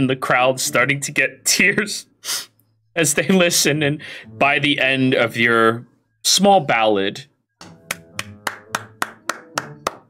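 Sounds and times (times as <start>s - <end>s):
person clapping: 7.6s - 10.0s.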